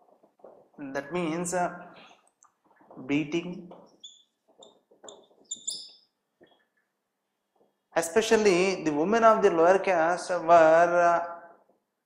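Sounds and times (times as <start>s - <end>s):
marker squeaking on whiteboard: 3.7s - 6.9s.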